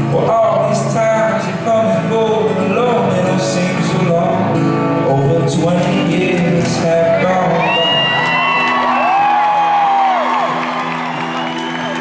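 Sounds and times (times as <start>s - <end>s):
acoustic guitar playing: 0.0s - 12.0s
audience whooping and cheering: 7.2s - 12.0s.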